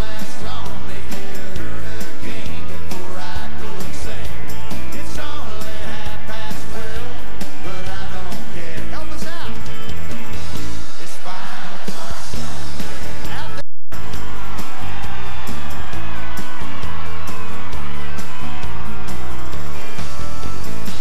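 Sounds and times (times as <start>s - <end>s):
person singing: 0.0s - 9.9s, 10.5s - 21.0s
acoustic guitar: 0.0s - 21.0s
live band music: 0.0s - 21.0s
crowd whooping: 11.3s - 21.0s.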